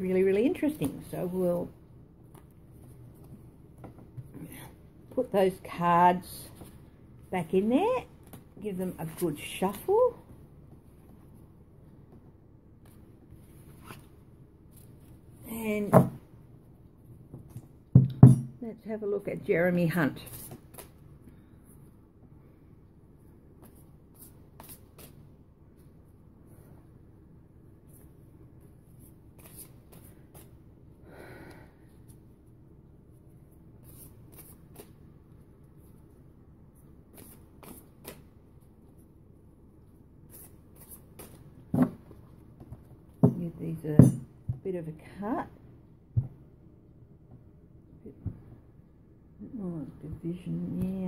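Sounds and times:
low room hum: 0.0 - 51.0
card deck shuffling: 23.6 - 25.2, 29.3 - 30.6, 37.1 - 38.3.

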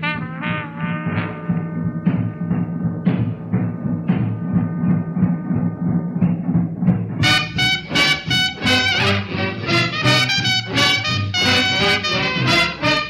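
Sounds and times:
brass section: 0.0 - 3.4, 7.2 - 13.0
big-band swing music: 0.0 - 13.0
drums: 0.0 - 13.0.

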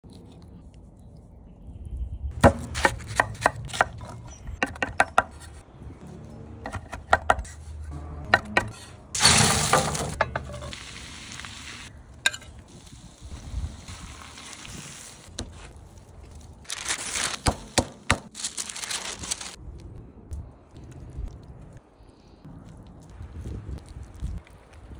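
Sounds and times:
spatula knocking and scraping: 6.6 - 10.7
onions sizzling in a skillet: 10.4 - 15.3.

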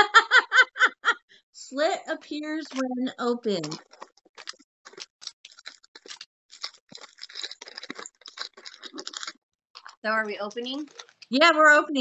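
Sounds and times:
plastic packaging crinkling: 2.6 - 11.6.

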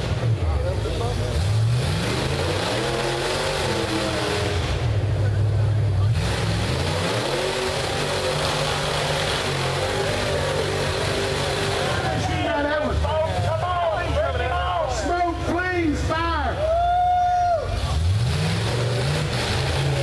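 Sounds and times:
buggy engine revving: 0.0 - 20.0.

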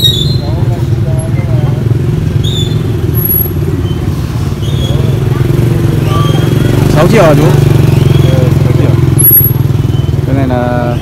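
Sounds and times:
high-pitched whistle: 0.0 - 0.6
motorbike engine idling: 0.0 - 11.0.

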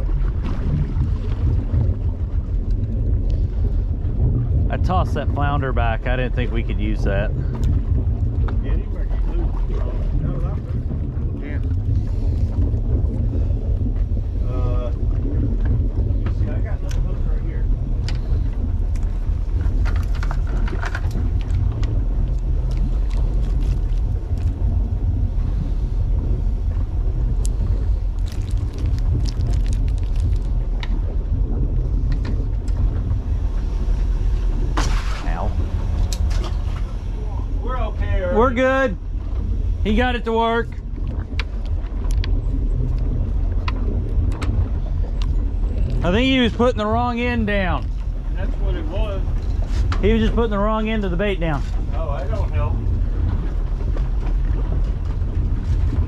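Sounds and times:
boat rumble and water wash: 0.0 - 56.0.

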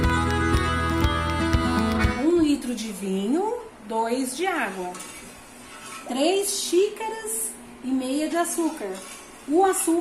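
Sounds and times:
woman speaking: 2.2 - 5.2, 6.0 - 10.0.

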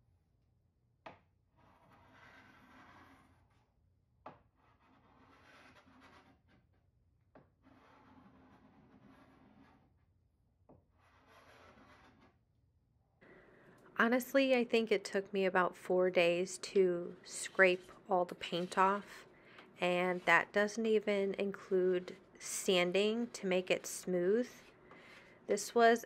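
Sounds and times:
paint scraper scraping wood: 1.5 - 3.7, 4.4 - 6.8, 7.5 - 10.0, 10.8 - 12.4, 17.2 - 25.3.

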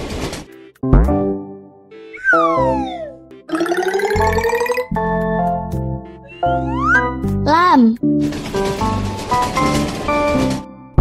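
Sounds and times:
children's background music: 0.6 - 8.2.

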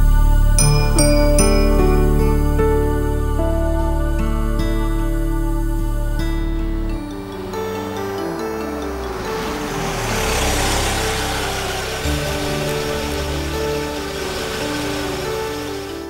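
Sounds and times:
background film music: 0.0 - 16.0
vehicle driving up: 1.3 - 16.0.

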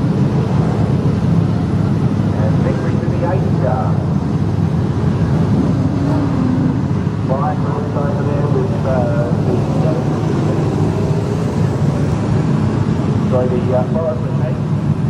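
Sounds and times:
engine low rumble: 0.0 - 15.0.

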